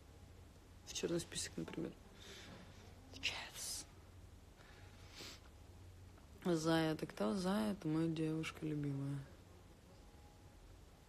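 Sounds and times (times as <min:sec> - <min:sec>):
woman whispering: 0:03.0 - 0:04.0.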